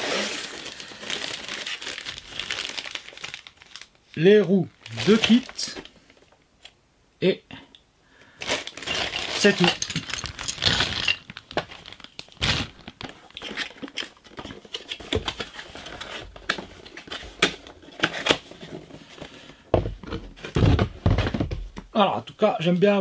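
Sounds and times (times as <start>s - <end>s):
cardboard rustling and scraping: 4.9s - 5.8s, 8.4s - 21.6s.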